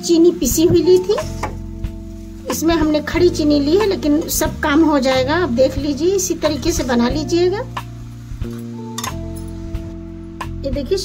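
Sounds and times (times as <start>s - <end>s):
background music with held notes: 0.0s - 11.0s
metal ladle clinking on pan: 8.9s - 9.4s.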